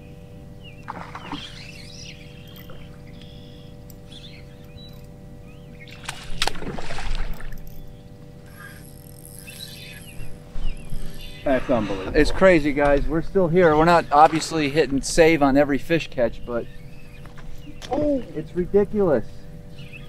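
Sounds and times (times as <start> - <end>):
birds chirping: 0.0 - 6.7, 7.3 - 20.0
faint steady hum: 0.0 - 20.0.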